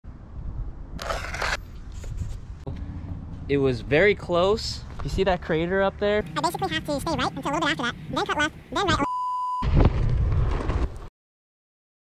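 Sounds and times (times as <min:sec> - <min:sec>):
brief crunching scrape: 0:01.0 - 0:02.4.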